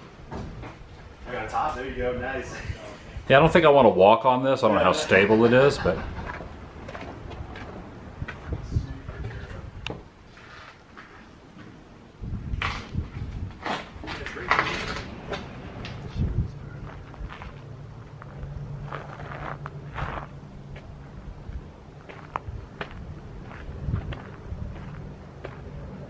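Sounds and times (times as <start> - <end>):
low steady hum: 11.3 - 26.0.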